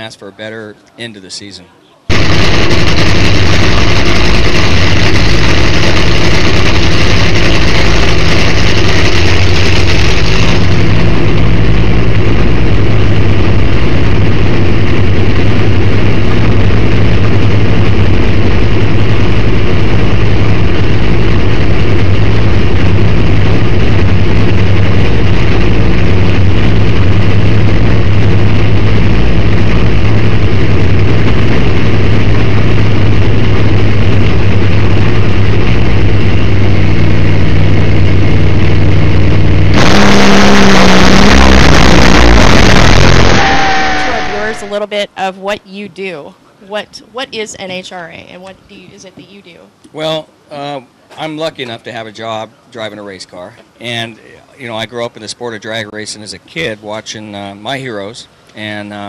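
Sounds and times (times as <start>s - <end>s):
supercharged engine idling: 2.1s - 44.8s.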